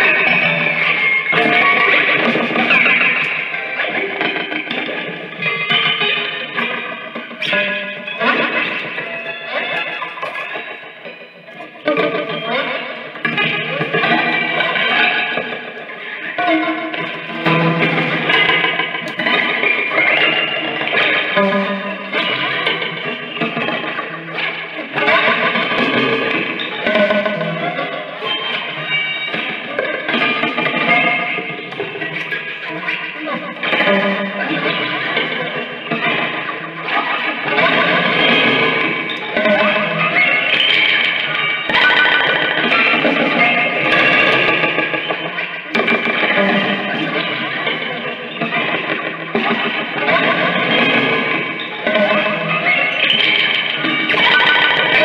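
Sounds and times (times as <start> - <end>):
prepared electric guitar metallic tones: 0.0 - 55.0.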